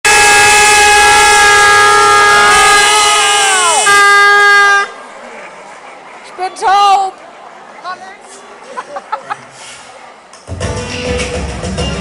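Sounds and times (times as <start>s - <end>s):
loud horn-like chord: 0.0s - 4.9s
steady horn tone: 0.0s - 5.0s.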